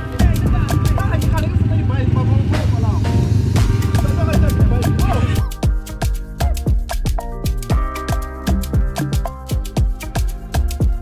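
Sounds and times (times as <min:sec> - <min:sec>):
quad bike engines idling: 0:00.0 - 0:03.4.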